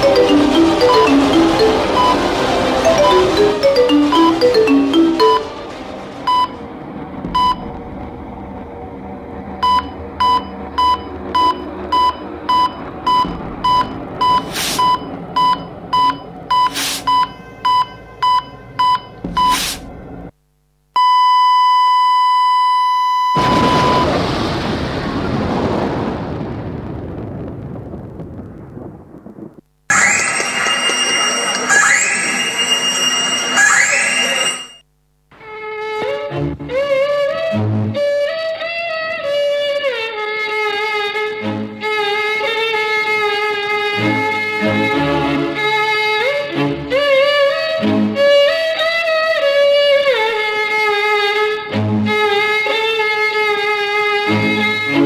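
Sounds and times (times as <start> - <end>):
flatline tone: 0.0 - 6.7, 29.9 - 34.8
low musical bed: 0.0 - 6.7
dramatic music with high tones: 0.0 - 6.8, 29.9 - 34.8
rushing swell of noise: 0.0 - 9.6
heart monitor beeping: 7.3 - 7.7, 9.6 - 19.6, 29.9 - 34.8.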